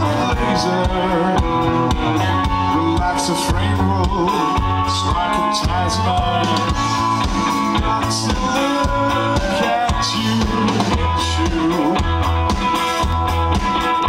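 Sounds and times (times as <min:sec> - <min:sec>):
bass guitar: 0:00.0 - 0:14.0
drum kit: 0:00.0 - 0:14.0
electric guitars: 0:00.0 - 0:14.0.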